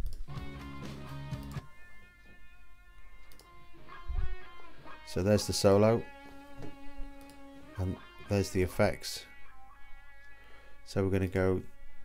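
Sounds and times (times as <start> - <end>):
lead guitar solo: 0.3 - 12.0.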